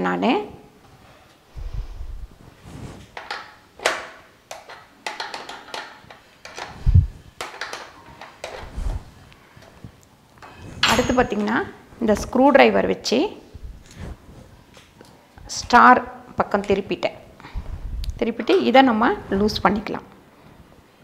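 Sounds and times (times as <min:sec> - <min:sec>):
metal clinks and scrapes: 0:10.4 - 0:11.6.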